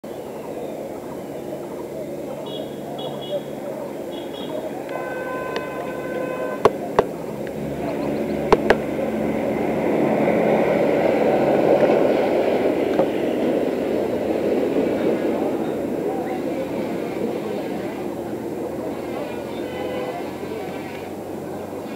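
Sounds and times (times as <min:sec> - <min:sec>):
murmur of indistinct voices: 0:00.0 - 0:21.9
steady pitched tone: 0:01.3 - 0:11.0.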